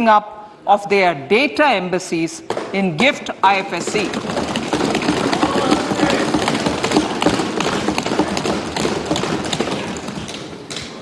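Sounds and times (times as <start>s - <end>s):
people thumping desks: 2.4s - 11.0s.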